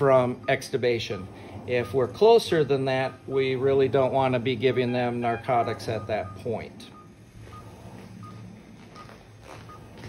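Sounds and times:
patient monitor pulse beeps: 0.1 - 3.8, 4.6 - 10.0.

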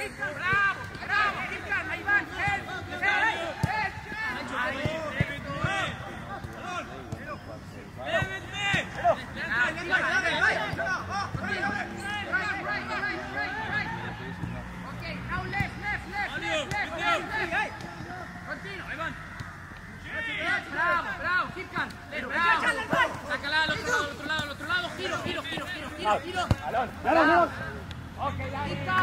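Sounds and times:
men shouting and calling: 0.0 - 29.0.

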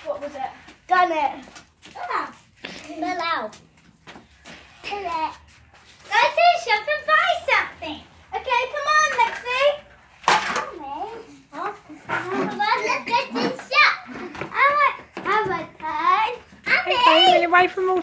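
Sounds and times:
children talking and calling out: 0.0 - 18.0.

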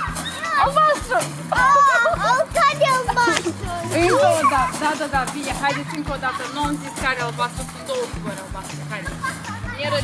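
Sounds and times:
young children shouting: 0.0 - 4.8
music with bass line: 0.0 - 10.0.

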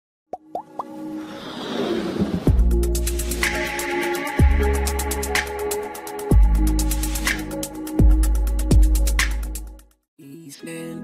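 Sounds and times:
electronic music: 2.5 - 9.8.

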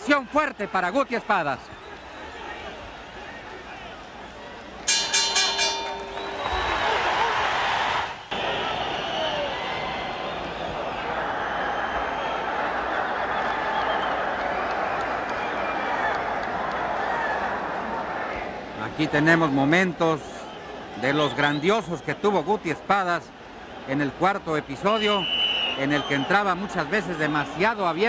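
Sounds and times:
crowd ovation: 0.0 - 4.4, 5.4 - 22.8, 24.7 - 28.0
crowd noise: 0.0 - 28.0
boxing ring bell: 4.9 - 7.0.

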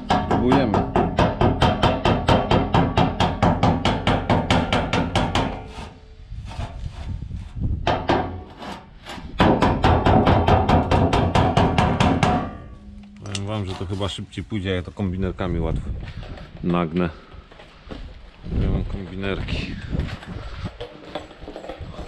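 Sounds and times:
hammer tapping metal gutter: 0.0 - 5.9, 7.8 - 8.7, 9.4 - 13.4.

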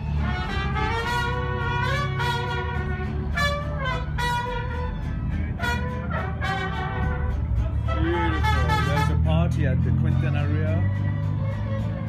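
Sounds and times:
mariachi band playing: 0.0 - 12.0
trumpet holding long notes: 0.2 - 5.0, 5.6 - 9.3.

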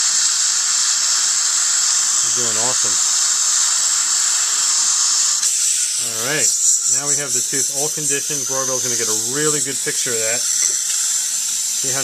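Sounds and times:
dental drill hissing: 0.0 - 12.0.

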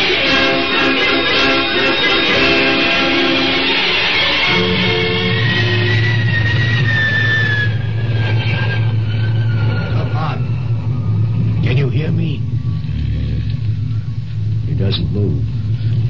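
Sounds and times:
high tone gliding downward: 0.0 - 14.7
low engine drone: 0.0 - 16.0.

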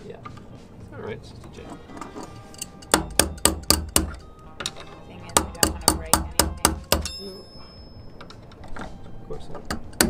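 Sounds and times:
metal tool knocking on chain: 2.5 - 8.6.

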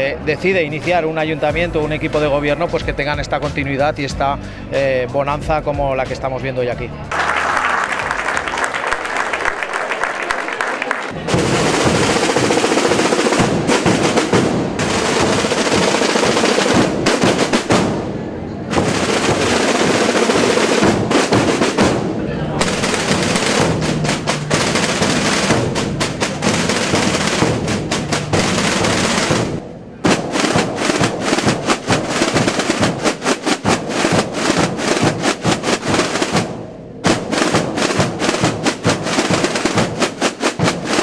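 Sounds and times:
snare and bass drums rolling: 11.1 - 41.0.

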